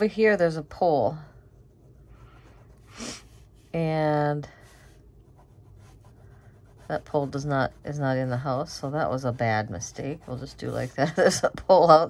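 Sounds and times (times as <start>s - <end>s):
ink pen scratching on paper: 4.8s - 11.4s.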